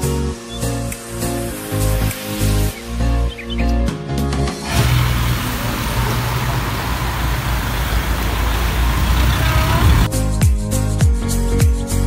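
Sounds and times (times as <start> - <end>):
background music: 0.0 - 12.0
street traffic: 4.6 - 10.1
vehicle engine rumbling: 4.7 - 10.1.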